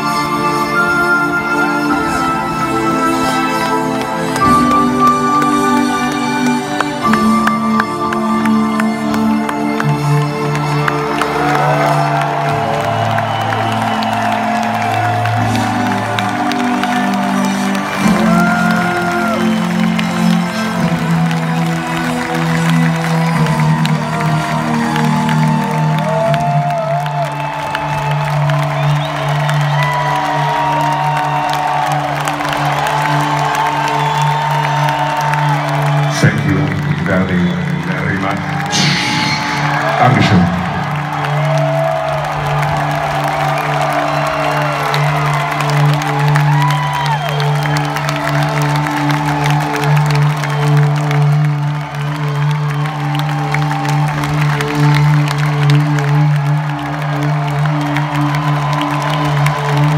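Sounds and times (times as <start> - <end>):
crowd cheering: 0.0 - 59.9.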